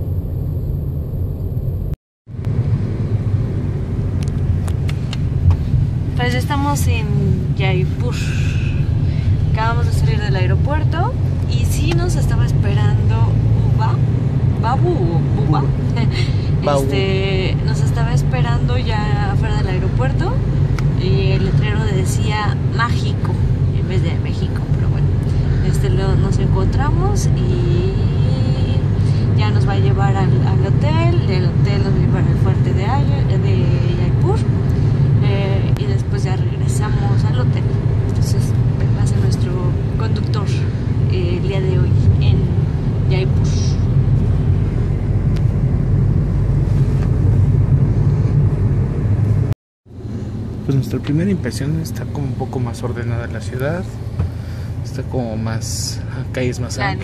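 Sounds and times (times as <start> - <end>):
car road and engine rumble: 0.0 - 57.0
woman talking: 6.2 - 8.5, 9.4 - 14.0, 14.6 - 20.4, 21.0 - 34.5, 35.2 - 43.9, 56.8 - 57.0.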